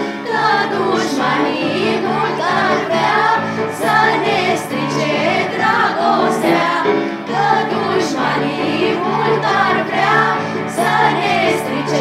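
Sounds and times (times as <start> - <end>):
girls singing together: 0.0 - 12.0.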